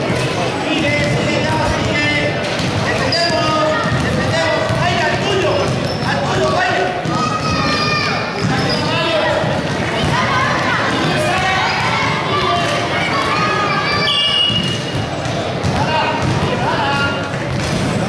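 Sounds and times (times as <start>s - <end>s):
basketball bouncing on court: 0.0s - 18.0s
people shouting in a hall: 6.4s - 15.1s.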